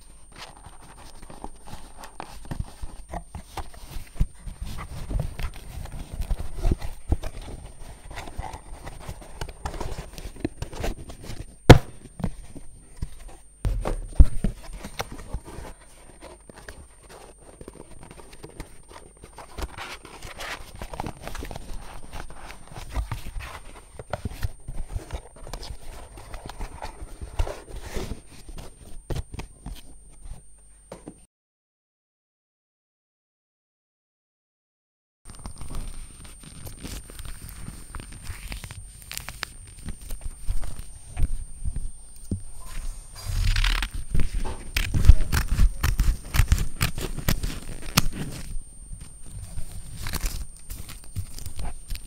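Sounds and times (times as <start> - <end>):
cardboard scraping: 0.3 - 28.9, 42.2 - 52.0
paper crackling: 35.3 - 52.0
cardboard flaps scraping: 42.2 - 48.6.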